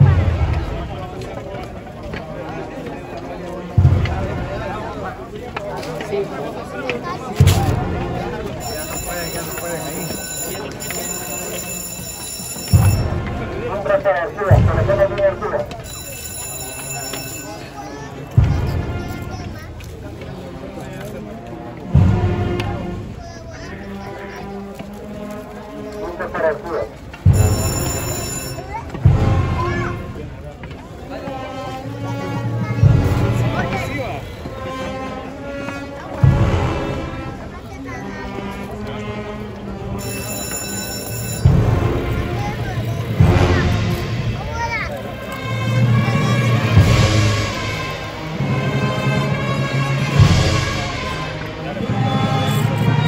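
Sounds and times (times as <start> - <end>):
loud low drum stroke: 0.0 - 1.6, 3.7 - 5.4, 7.3 - 8.7, 14.5 - 15.8, 18.3 - 20.4, 21.8 - 23.7, 28.8 - 30.9, 32.3 - 34.8, 36.1 - 37.6, 41.5 - 53.0
brass band playing funeral march: 0.0 - 53.0.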